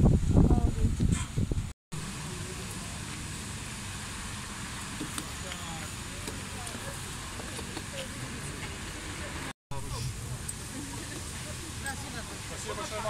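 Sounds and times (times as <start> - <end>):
voices: 5.0 - 13.0.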